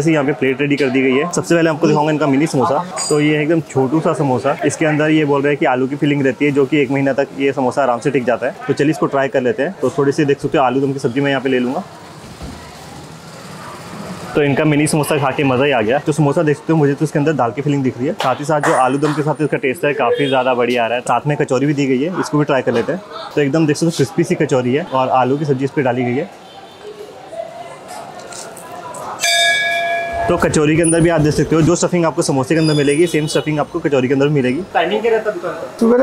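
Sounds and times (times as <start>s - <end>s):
low street hum: 0.0s - 36.0s
temple bell ringing: 29.2s - 31.1s.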